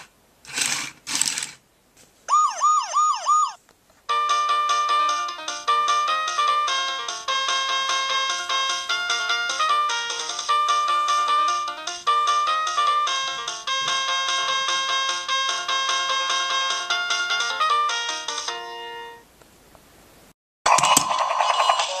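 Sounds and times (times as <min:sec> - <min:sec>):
toy electronic beeping melody: 0:02.3 - 0:03.6.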